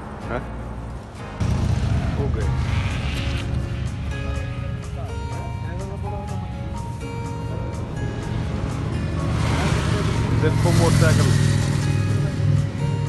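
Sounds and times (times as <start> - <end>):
background music: 0.0 - 13.0
vehicle passing by: 8.0 - 13.0.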